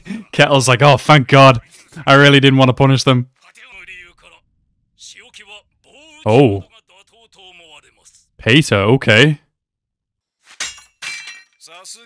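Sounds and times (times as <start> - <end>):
man speaking: 0.1 - 9.4.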